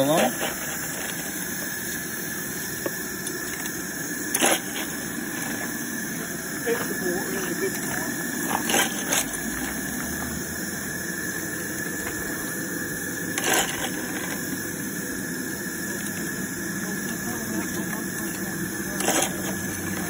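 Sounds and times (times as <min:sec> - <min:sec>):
steam locomotive hissing: 0:00.0 - 0:20.0
shovel scraping and clattering: 0:04.3 - 0:05.7, 0:08.4 - 0:09.8, 0:13.4 - 0:14.4, 0:18.9 - 0:20.0.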